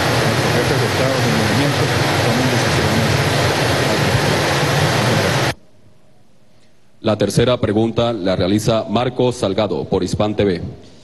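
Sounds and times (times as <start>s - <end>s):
electronic noise hiss: 0.0s - 9.3s.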